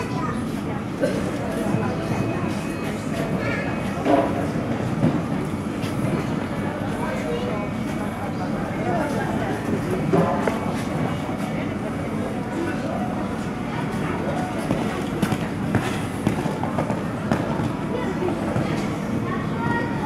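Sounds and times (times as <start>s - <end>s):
indistinct voices in a large hall: 0.0s - 20.0s.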